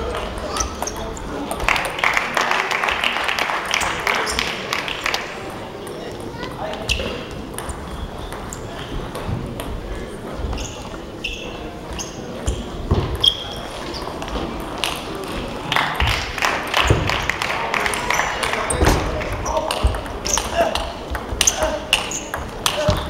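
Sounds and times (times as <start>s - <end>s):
spectators chattering in hall: 0.0s - 23.0s.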